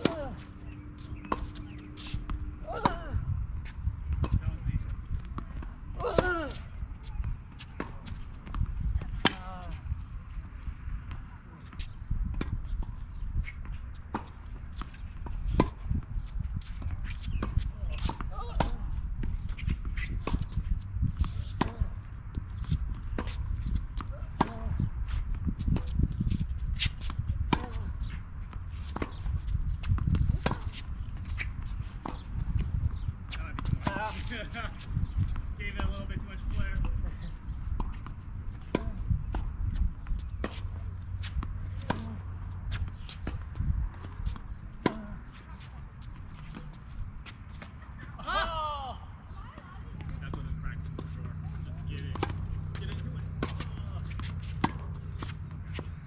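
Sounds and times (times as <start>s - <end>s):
wind rumble on microphone: 0.0s - 56.0s.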